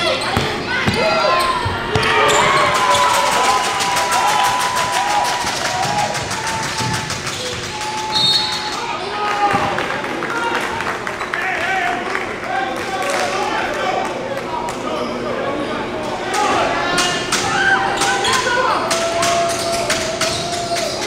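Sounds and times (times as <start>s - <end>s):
people shouting: 0.7s - 9.7s.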